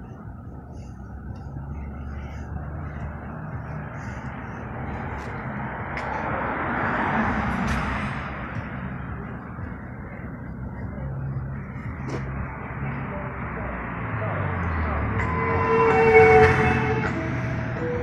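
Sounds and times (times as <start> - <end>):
car passing: 0.0 - 18.0
low traffic hum: 0.0 - 18.0.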